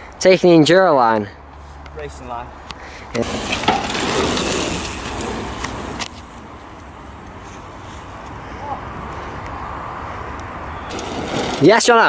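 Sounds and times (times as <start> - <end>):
bike tyres rolling on dirt: 3.2 - 12.0.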